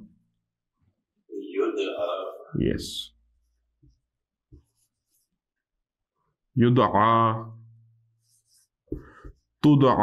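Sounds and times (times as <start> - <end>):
marker scratching on whiteboard: 3.4 - 5.6, 8.1 - 9.6.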